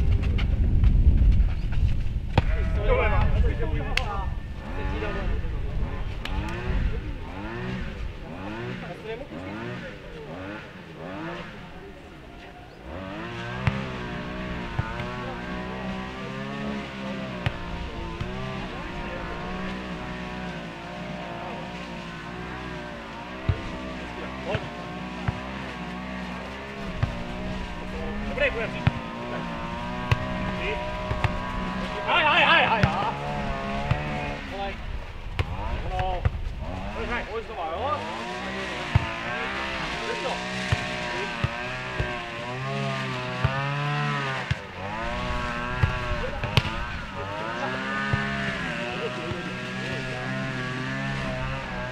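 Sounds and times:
ball being kicked: 0.0s - 4.1s, 13.6s - 14.0s, 14.7s - 15.3s, 23.4s - 23.8s, 24.5s - 25.5s, 28.3s - 29.1s, 30.1s - 31.5s, 32.6s - 33.2s, 35.3s - 36.5s, 38.9s - 39.2s, 45.8s - 47.0s
engine running: 0.0s - 51.9s.

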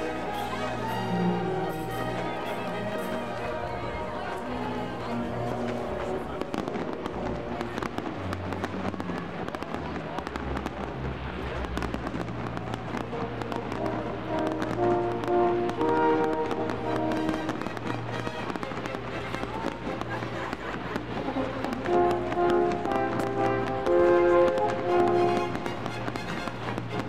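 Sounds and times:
classical music: 0.0s - 27.0s
fireworks crackling and popping: 0.0s - 27.0s.

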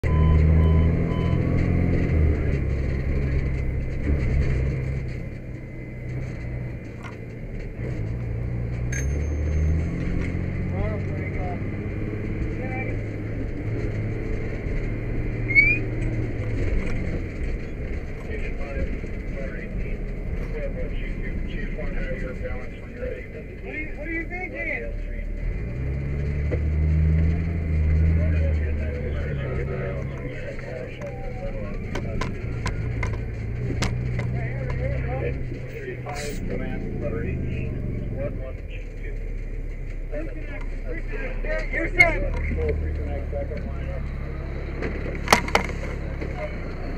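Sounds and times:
diesel engine rumbling: 0.0s - 46.9s
muffled radio voices: 10.6s - 25.6s, 28.0s - 46.9s.

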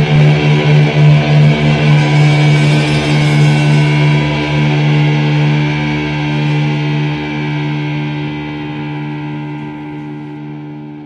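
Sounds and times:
electric guitar chord ringing: 0.0s - 11.0s.

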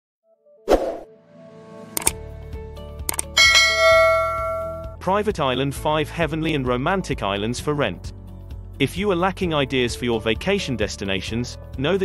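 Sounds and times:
sharp clicks: 3.1s - 3.4s
bright bell-like ding: 3.4s - 5.0s
chime-like logo jingle: 3.4s - 5.0s.

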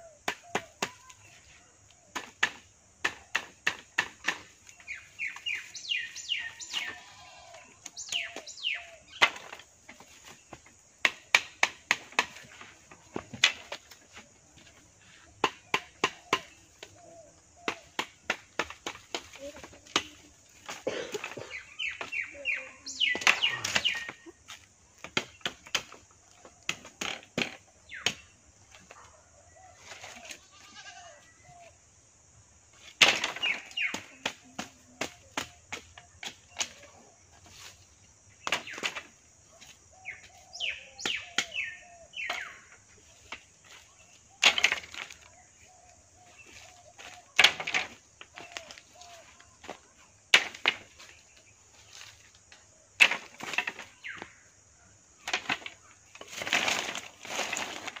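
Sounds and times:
bamboo sticks knocking and chopping: 0.2s - 1.3s, 2.0s - 5.6s, 7.8s - 22.2s, 23.0s - 29.0s, 32.8s - 37.7s, 38.4s - 40.4s, 41.0s - 41.6s, 42.2s - 45.3s, 46.3s - 54.4s, 55.2s - 58.0s.

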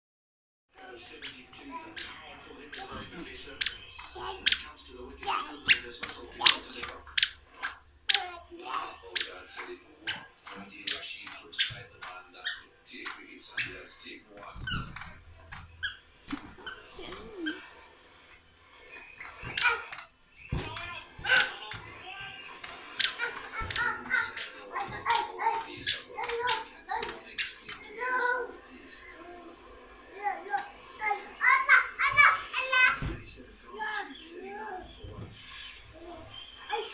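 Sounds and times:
balloons squeaking and tapping: 3.6s - 13.7s, 19.0s - 27.8s
toddler's voice: 27.9s - 28.6s, 30.2s - 33.1s.

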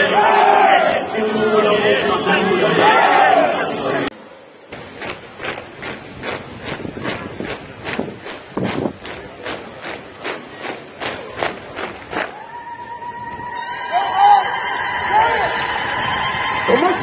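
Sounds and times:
boots stamping in unison: 4.7s - 12.3s.

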